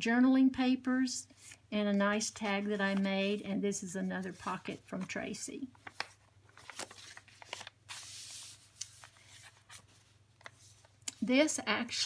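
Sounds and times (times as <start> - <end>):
paper page turning: 1.4 - 3.4, 4.2 - 10.9.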